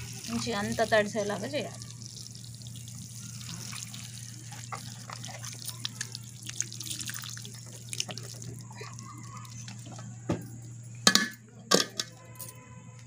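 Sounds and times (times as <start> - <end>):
water sprinkling onto soil: 0.0 - 9.1.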